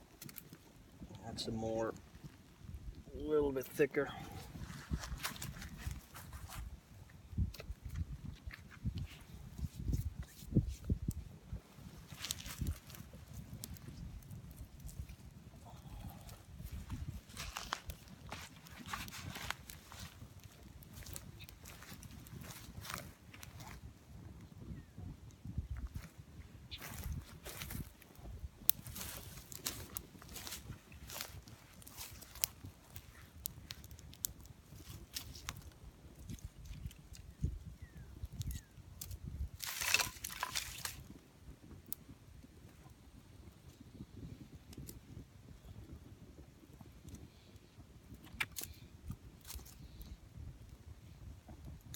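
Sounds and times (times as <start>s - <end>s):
fire crackling and popping: 0.0s - 51.9s.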